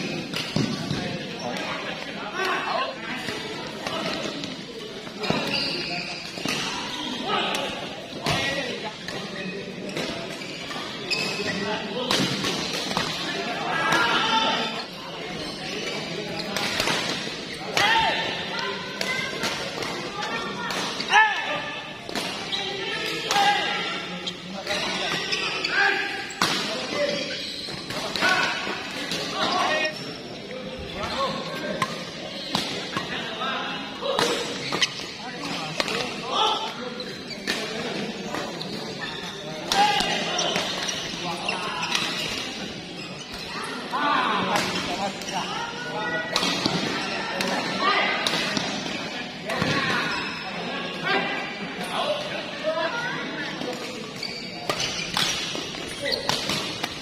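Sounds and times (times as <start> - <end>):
shoe squeaks: 5.2 - 7.5, 9.4 - 11.7, 14.6 - 16.5, 24.2 - 28.5, 32.2 - 32.6, 34.5 - 35.2, 38.2 - 43.8, 50.0 - 50.6, 54.0 - 56.4
rackets hitting shuttlecock: 34.1 - 35.1.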